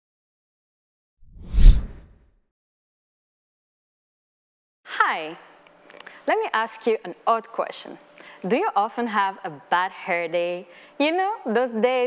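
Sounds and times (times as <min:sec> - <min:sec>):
logo reveal whoosh: 0:01.3 - 0:02.1.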